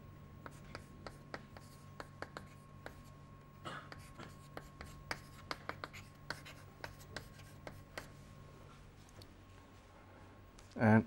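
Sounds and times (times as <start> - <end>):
faint steady hum: 0.0 - 11.0
chalk tapping and scratching: 0.4 - 3.2, 3.9 - 8.2.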